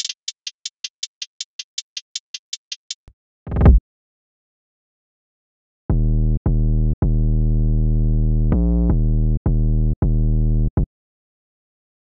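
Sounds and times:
deep bass notes: 5.9 - 10.9.

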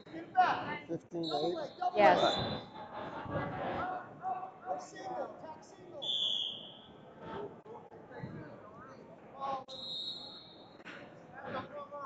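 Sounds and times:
referee's whistle blast: 6.0 - 6.9.

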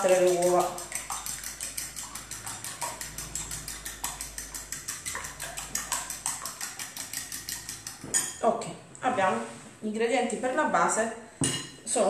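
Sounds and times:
fork beating eggs in a bowl: 0.0 - 8.4.

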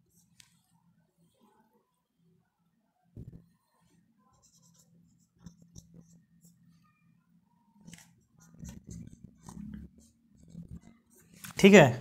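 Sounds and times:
soft knock: 3.2 - 3.4
marker squeaking on whiteboard: 3.2 - 7.1, 7.8 - 11.4.

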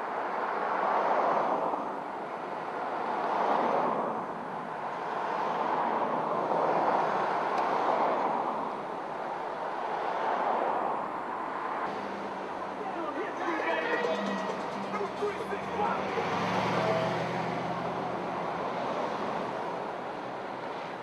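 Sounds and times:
cars driving past: 0.0 - 21.0.

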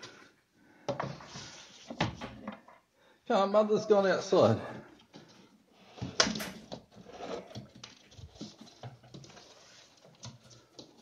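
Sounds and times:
animal claws scratching: 5.2 - 11.0.

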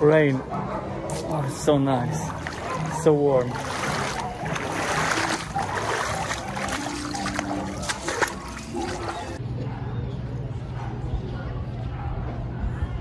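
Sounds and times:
wading through splashing water: 1.1 - 9.4.

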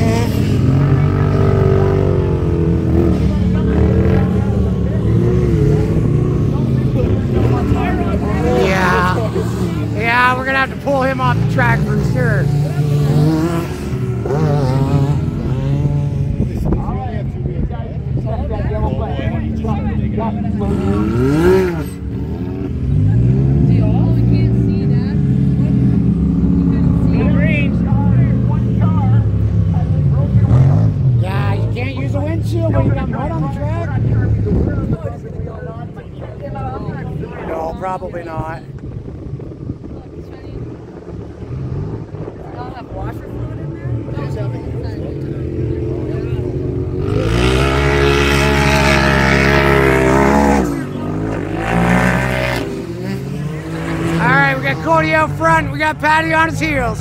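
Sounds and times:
racing engines revving: 0.0 - 57.0.

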